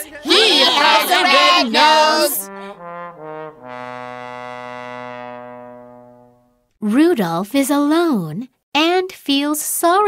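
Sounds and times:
low trombone note: 2.4 - 6.7.

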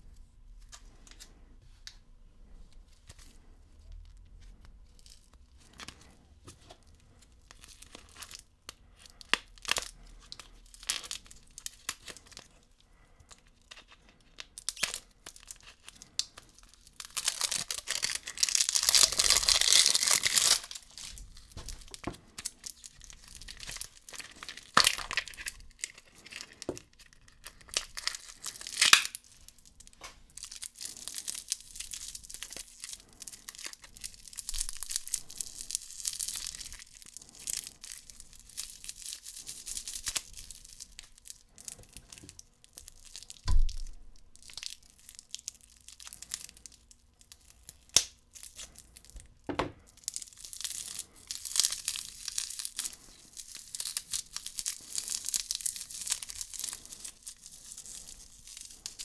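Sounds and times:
candy packaging crinkling: 0.4 - 59.0.

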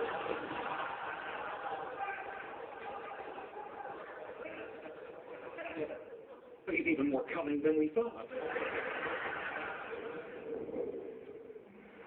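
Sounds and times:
studio audience laughing on television: 0.0 - 5.3, 8.2 - 10.8.

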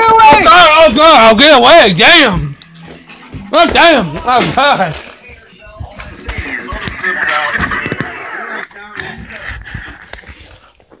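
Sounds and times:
background music: 0.0 - 9.3
muffled voices: 2.2 - 10.7
scuffling: 2.3 - 8.2.

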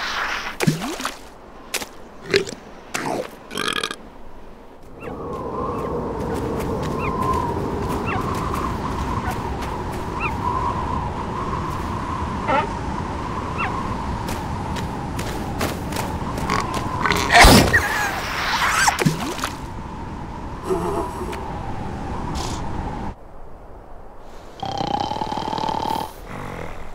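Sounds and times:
snowstorm wind whistling: 0.0 - 26.9.

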